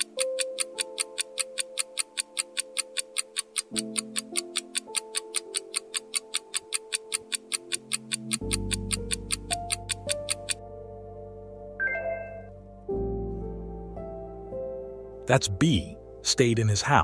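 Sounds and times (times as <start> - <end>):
countdown timer ticking: 0.0 - 10.6
soft background music chords: 0.0 - 17.0.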